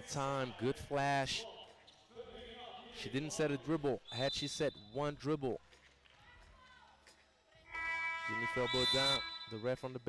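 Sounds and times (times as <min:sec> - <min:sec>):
faint outdoor court ambience: 0:00.0 - 0:10.0
held tones over sound system: 0:07.8 - 0:10.0.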